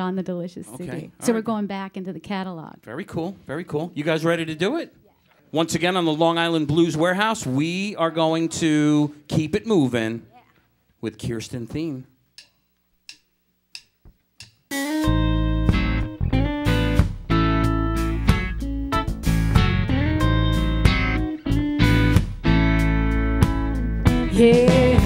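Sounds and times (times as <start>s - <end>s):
tempo count clicks: 12.3s - 14.8s
blues band playing: 14.7s - 25.0s.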